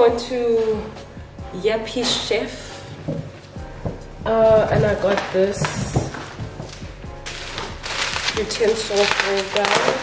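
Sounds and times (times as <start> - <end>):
background music: 0.0 - 10.0
packaging rustling: 4.6 - 10.0.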